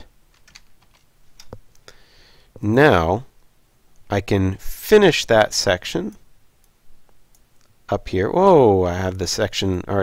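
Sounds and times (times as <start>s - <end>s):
faint keyboard keystrokes: 0.3s - 1.6s.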